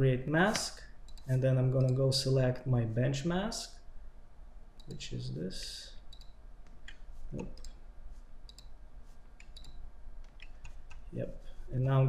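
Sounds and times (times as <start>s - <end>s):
low steady hum: 0.0s - 12.0s
computer mouse clicking: 0.5s - 2.0s, 8.4s - 8.8s, 9.4s - 11.1s.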